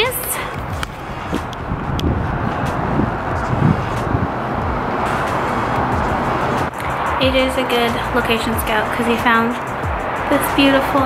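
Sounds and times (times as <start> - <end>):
wind gusts buffeting microphone: 0.0 - 11.0
wind rushing over microphone: 0.0 - 11.0.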